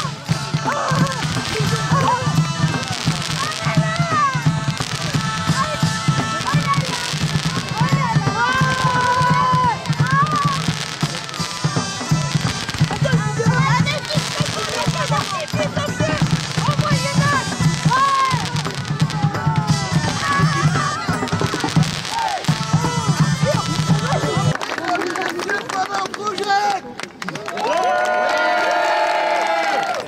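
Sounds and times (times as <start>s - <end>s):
fireworks crackling and popping: 0.0s - 27.2s
crowd voices: 0.0s - 30.0s.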